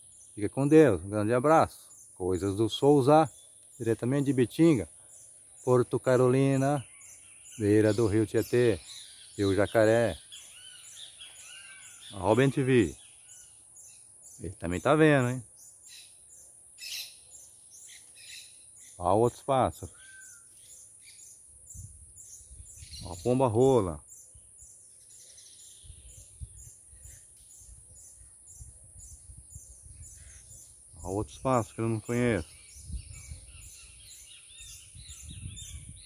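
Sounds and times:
bird chirps: 0.0 - 36.0.

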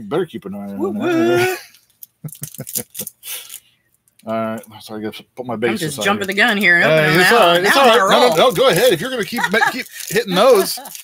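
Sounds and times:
cards brushing rustle: 6.1 - 11.0.

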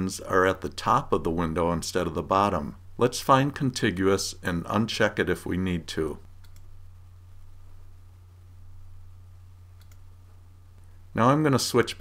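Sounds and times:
low electrical hum: 0.0 - 12.0
computer mouse clicking: 6.4 - 6.7, 9.8 - 10.1.

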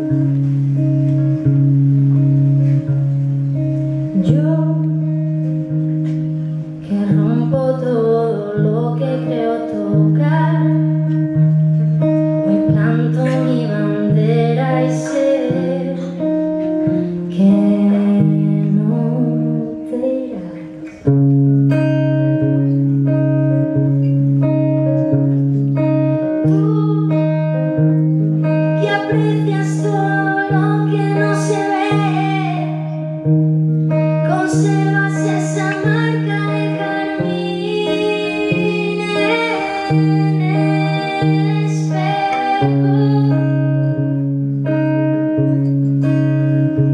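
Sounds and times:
acoustic guitar chords: 0.0 - 46.9
woman singing: 4.0 - 5.7, 6.6 - 11.6, 12.3 - 21.1, 26.1 - 33.3, 34.1 - 44.3.

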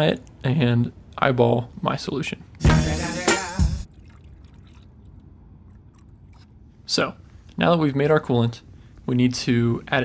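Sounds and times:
water pouring into plastic cup: 3.9 - 6.7.

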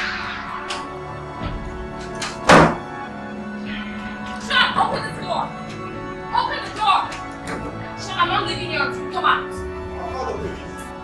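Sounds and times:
background music with sustained tones: 0.0 - 11.0
wooden door shutting: 2.2 - 2.9.

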